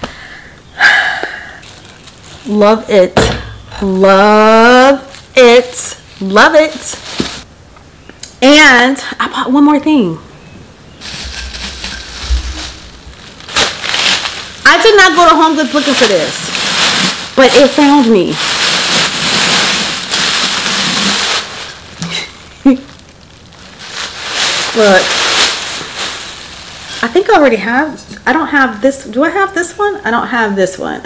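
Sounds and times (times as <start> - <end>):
plastic bag rustling: 1.4 - 7.5, 10.9 - 28.0.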